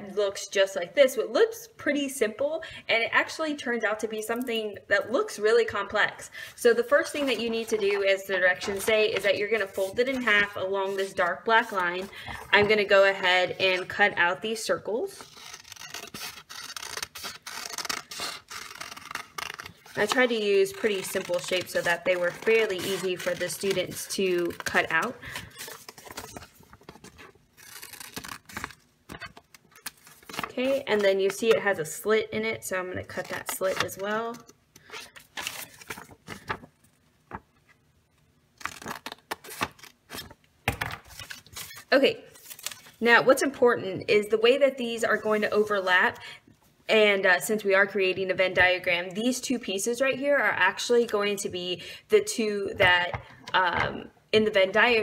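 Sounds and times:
paper rustling: 7.0s - 14.0s, 16.0s - 31.6s, 33.1s - 37.8s
scissors snipping paper: 15.6s - 26.4s.

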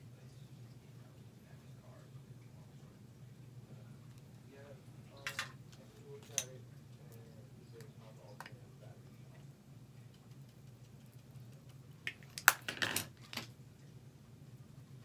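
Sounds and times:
low steady hum: 0.0s - 15.0s
makeup containers clicking and knocking: 12.1s - 13.4s.

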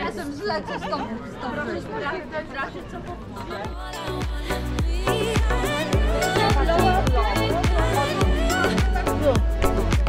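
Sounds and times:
voices chatting: 0.0s - 10.0s
music with heavy beat: 3.7s - 10.0s.

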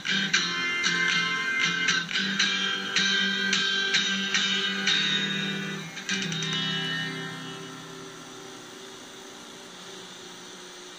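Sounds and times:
acoustic guitar chord ringing: 0.0s - 9.4s
steady hiss: 0.0s - 10.9s.

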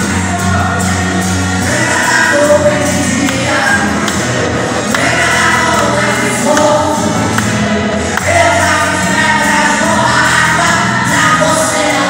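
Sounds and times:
musical accompaniment: 0.0s - 12.0s
voices singing along: 0.0s - 12.0s
man singing gospel into microphone: 1.6s - 12.0s.

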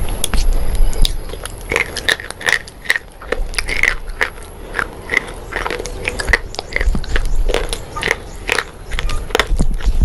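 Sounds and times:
chalk crunching being chewed: 0.1s - 10.0s.

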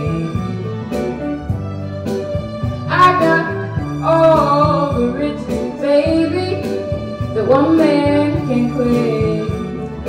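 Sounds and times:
backing track with bass and drums: 0.0s - 10.0s
woman singing: 2.9s - 10.0s.

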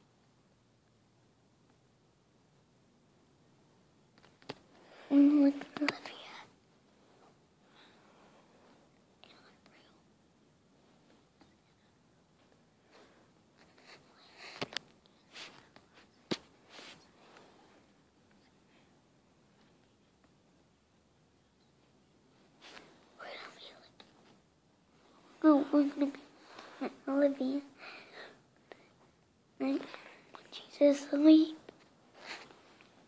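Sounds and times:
person whispering: 5.0s - 6.6s, 9.2s - 10.1s, 11.3s - 12.0s, 23.1s - 24.3s, 25.3s - 28.3s, 29.6s - 31.6s.

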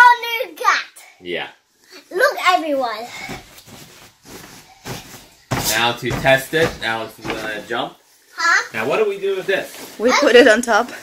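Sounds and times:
rustling and handling noise: 1.7s - 11.0s.

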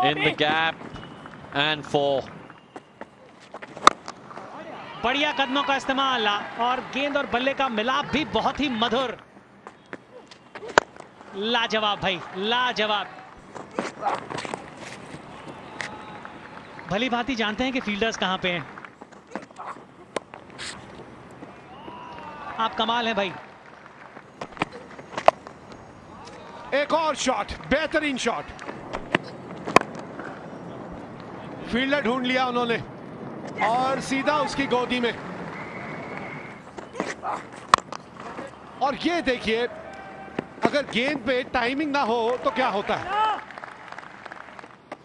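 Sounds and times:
bowler's footsteps: 13.3s - 16.1s, 23.7s - 26.4s, 27.9s - 31.3s.

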